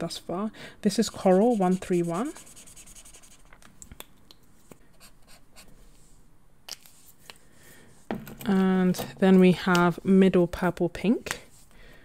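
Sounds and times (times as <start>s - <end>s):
marker scratching on paper: 0.9s - 3.5s.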